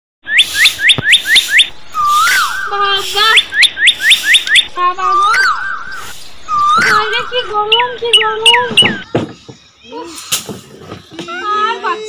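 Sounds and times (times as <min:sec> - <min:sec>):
chirpy whistling sound effect: 0:00.2 - 0:09.1.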